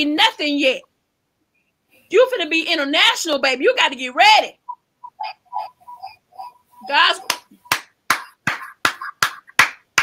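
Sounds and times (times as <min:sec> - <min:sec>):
hands clapping in rhythm: 0:07.2 - 0:10.0.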